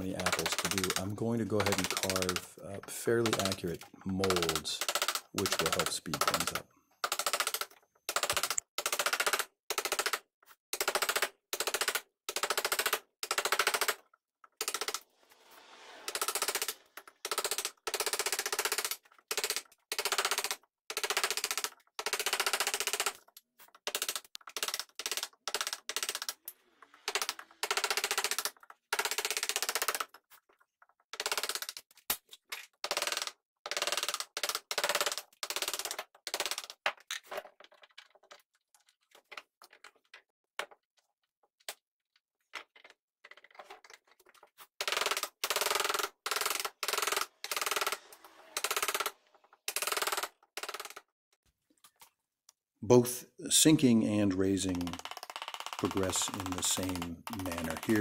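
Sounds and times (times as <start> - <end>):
carving gouge cutting wood: 14.6 - 18.0, 46.4 - 49.2.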